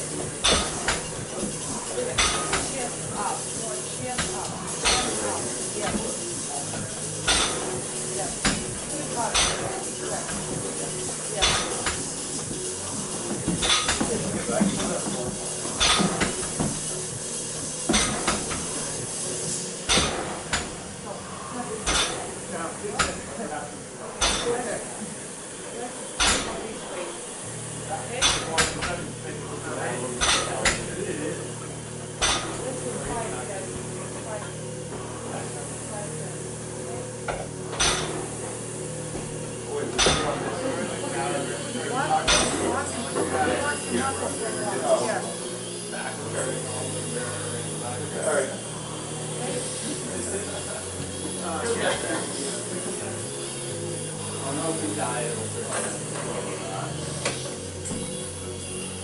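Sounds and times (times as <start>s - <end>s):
room noise: 0.0s - 59.0s
gym equipment metal clanks: 26.2s - 26.6s, 37.3s - 38.2s.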